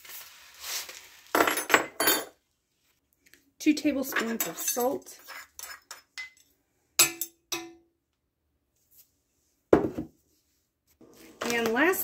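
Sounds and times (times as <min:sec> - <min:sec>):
metal spoons clinking: 0:04.2 - 0:07.8
spoon tapping a metal pot: 0:07.0 - 0:07.8.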